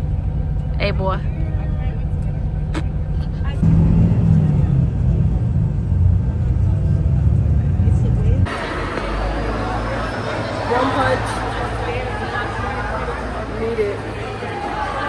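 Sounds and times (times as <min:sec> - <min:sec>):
bus engine and road rumble: 0:00.0 - 0:15.0
murmur of voices: 0:00.8 - 0:15.0.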